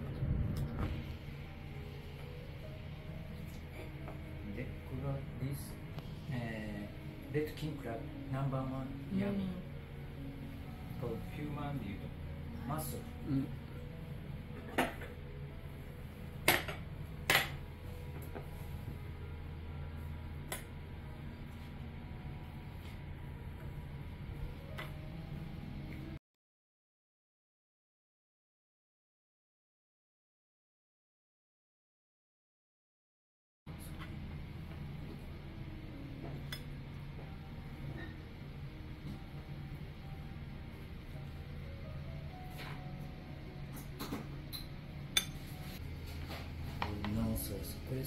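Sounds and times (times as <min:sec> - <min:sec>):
steady low hum: 0:00.0 - 0:26.2, 0:33.7 - 0:48.0
porcelain tableware clinking: 0:43.7 - 0:45.5.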